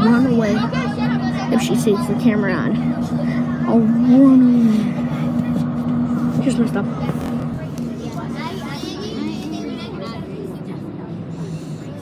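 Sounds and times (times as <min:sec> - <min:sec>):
bus engine droning: 0:00.0 - 0:12.0
passengers chattering: 0:00.0 - 0:12.0.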